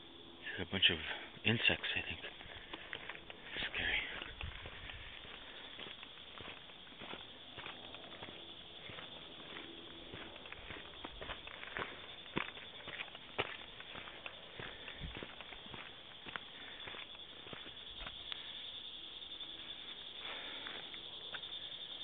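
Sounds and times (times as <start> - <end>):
insects buzzing: 0.0 - 22.0
footsteps on dirt and rock: 1.8 - 18.6.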